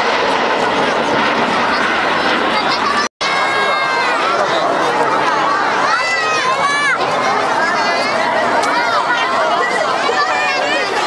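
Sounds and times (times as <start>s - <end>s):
jets flying past: 0.0s - 11.0s
spectators' voices: 0.0s - 11.0s.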